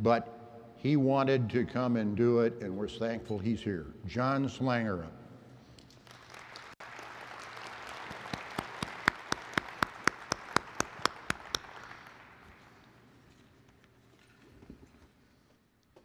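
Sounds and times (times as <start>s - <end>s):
audience applause: 6.0s - 12.8s
loud single person clapping: 6.1s - 12.4s.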